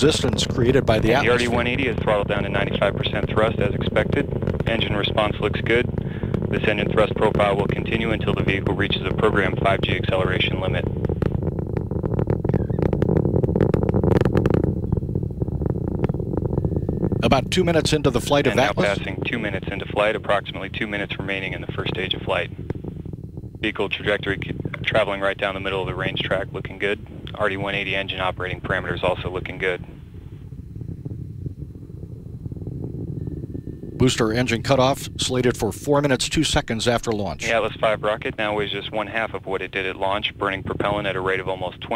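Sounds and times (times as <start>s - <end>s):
distant rocket engine rumble: 0.0s - 41.9s.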